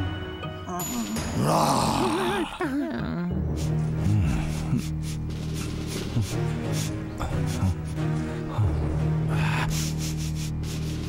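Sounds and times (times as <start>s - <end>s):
cartoon dog sniffing: 9.7s - 11.0s.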